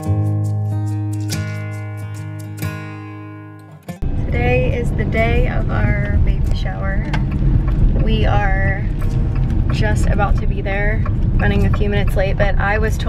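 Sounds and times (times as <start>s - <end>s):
car engine and road rumble: 4.0s - 13.0s
people talking: 4.2s - 7.3s, 8.0s - 8.9s, 9.7s - 13.0s.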